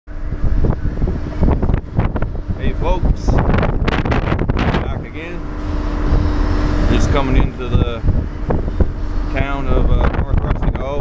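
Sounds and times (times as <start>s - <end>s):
boat engine running: 0.0s - 11.0s
wind buffeting microphone: 0.1s - 11.0s.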